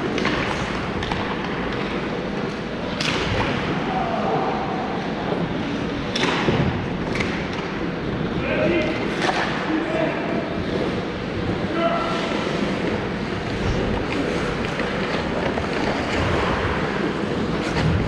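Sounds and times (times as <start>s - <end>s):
skates on ice: 0.0s - 18.0s.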